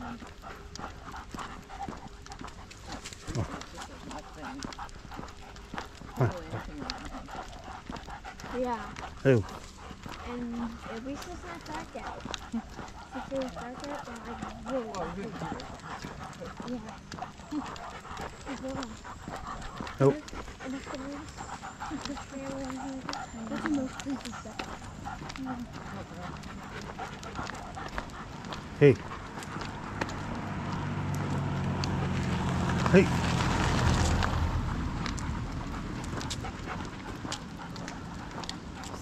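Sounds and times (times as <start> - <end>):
dog panting: 0.0 - 39.0
footsteps clicking on pavement: 0.0 - 39.0.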